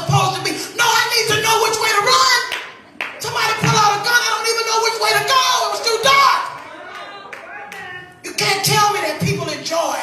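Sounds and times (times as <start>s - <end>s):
hand clapping: 2.5s - 3.8s.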